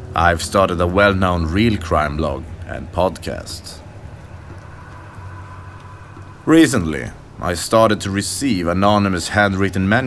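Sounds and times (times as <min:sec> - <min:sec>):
low drone: 0:00.0 - 0:09.0
soft hiss: 0:00.9 - 0:10.0
faint held higher tones: 0:02.5 - 0:07.9.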